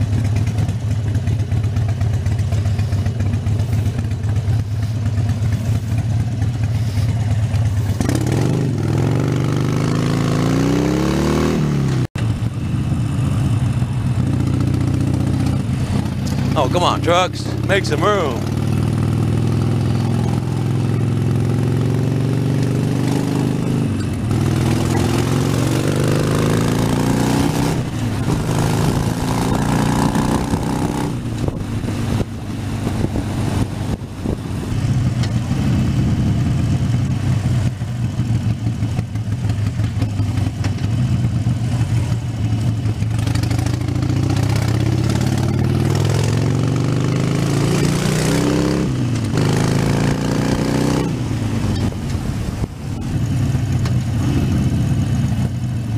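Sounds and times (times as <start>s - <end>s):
motorcycle engine running: 0.0s - 55.9s.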